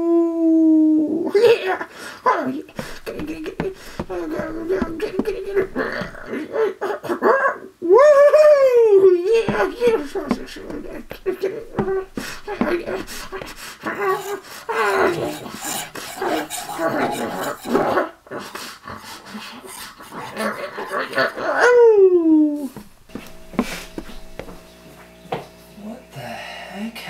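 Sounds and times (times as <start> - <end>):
steady low hum: 2.7 - 6.3, 9.3 - 17.9, 22.7 - 27.0
quick taps and knocks: 2.8 - 6.3, 9.3 - 13.8, 22.7 - 24.6.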